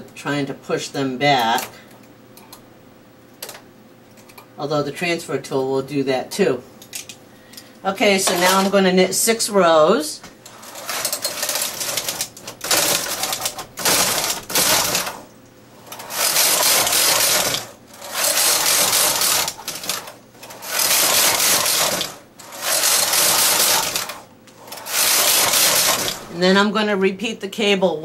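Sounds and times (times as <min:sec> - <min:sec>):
knitting machine carriage rattling: 0:08.2 - 0:08.7, 0:10.5 - 0:15.3, 0:15.9 - 0:26.4.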